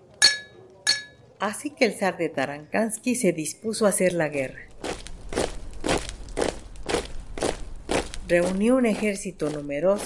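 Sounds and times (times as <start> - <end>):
marching footsteps crunching: 4.4 - 10.0
low rumble: 4.7 - 8.4.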